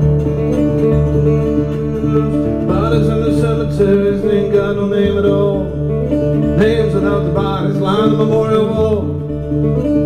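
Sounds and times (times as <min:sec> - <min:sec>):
fingerstyle acoustic guitar: 0:00.0 - 0:10.0.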